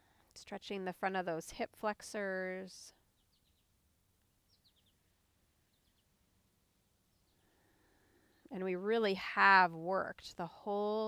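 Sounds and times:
bird chirps: 3.1 - 3.7, 4.4 - 6.2.

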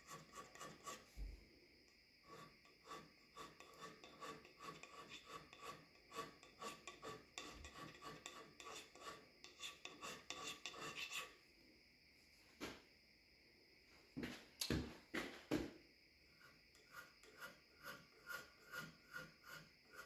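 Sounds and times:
hand scraper scraping cast iron: 0.0 - 1.1, 2.3 - 11.3, 16.4 - 20.0.

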